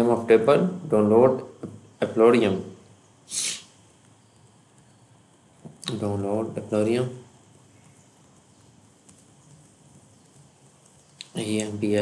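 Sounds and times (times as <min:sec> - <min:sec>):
low room noise: 0:00.0 - 0:12.0
keyboard typing: 0:07.5 - 0:11.4.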